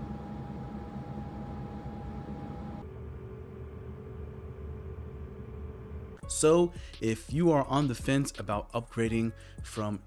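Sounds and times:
cpu cooler fan whirring: 0.0s - 6.5s.

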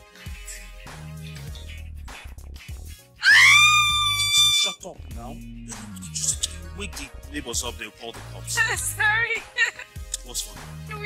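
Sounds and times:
background music: 0.0s - 11.0s
woman screaming: 3.2s - 4.8s.

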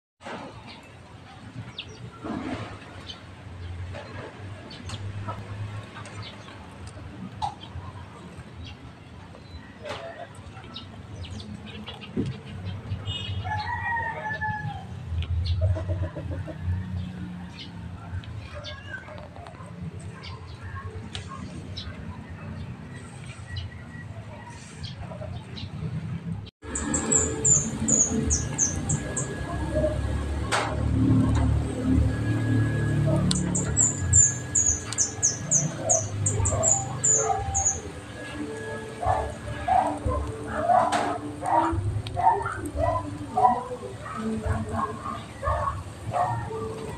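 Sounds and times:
rooster crowing: 13.4s - 15.0s
bird singing high notes: 26.6s - 30.2s.

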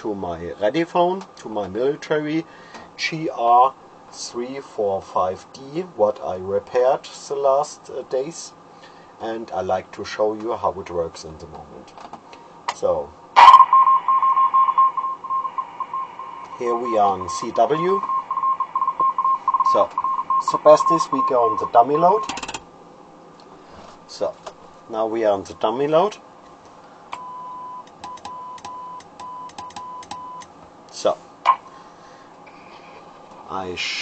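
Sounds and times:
morse code beeping: 13.4s - 22.5s.

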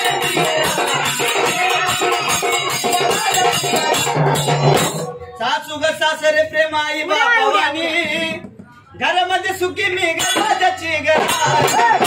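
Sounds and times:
devotional song with jingling percussion: 0.0s - 5.5s, 10.0s - 12.0s.

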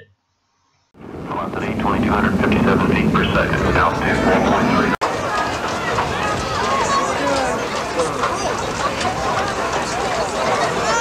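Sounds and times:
rocket rumble: 1.0s - 6.8s
spectators talking: 1.2s - 11.0s.

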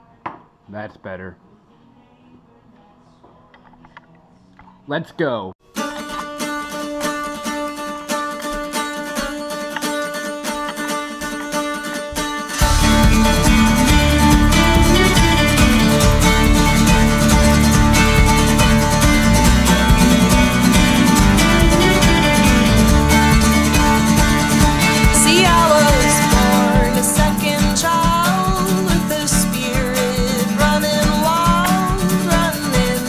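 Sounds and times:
plucked strings music: 5.6s - 33.0s
low bass part: 12.6s - 27.7s.

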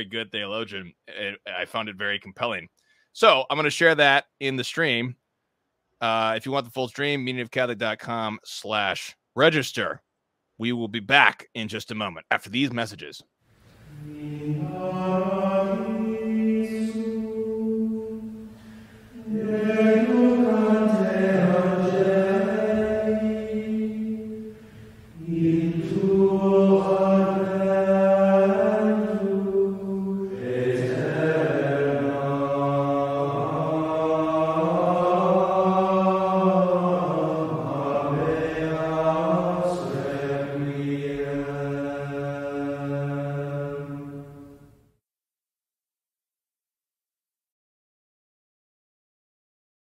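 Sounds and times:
slow chanted singing: 13.5s - 44.9s.

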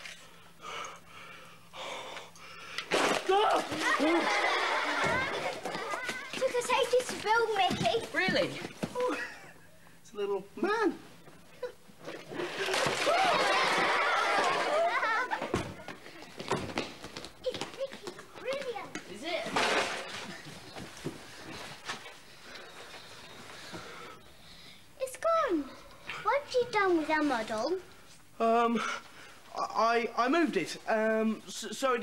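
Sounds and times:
children shouting and squealing: 3.3s - 6.9s, 12.9s - 15.5s.

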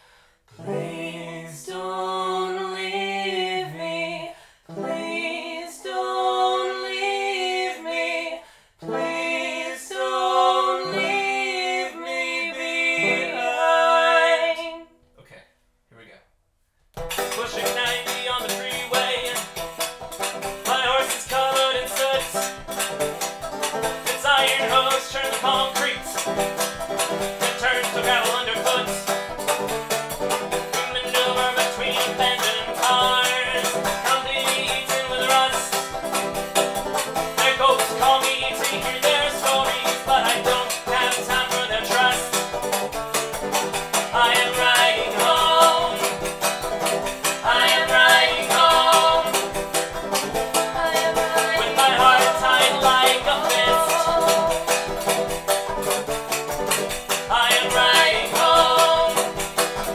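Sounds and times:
banjo playing: 0.5s - 4.1s, 4.7s - 14.9s, 17.0s - 59.9s
person singing unaccompanied: 0.5s - 14.9s, 17.3s - 22.8s, 23.8s - 29.7s, 30.3s - 42.8s, 43.7s - 55.9s, 57.1s - 59.9s
washboard rhythm: 17.0s - 59.9s.

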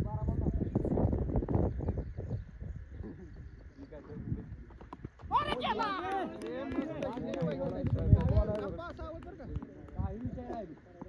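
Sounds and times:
voices shouting: 5.3s - 7.5s.

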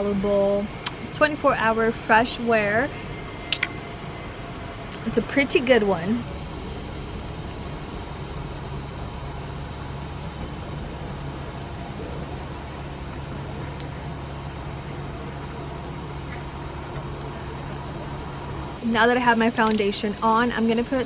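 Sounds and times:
low mechanical hum with hiss: 0.0s - 21.0s.

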